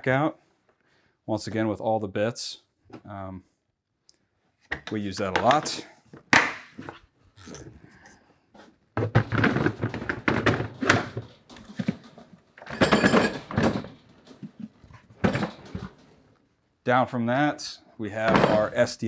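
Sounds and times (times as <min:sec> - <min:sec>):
hollow plastic thunks and clatter: 0:08.6 - 0:16.3, 0:18.2 - 0:18.8.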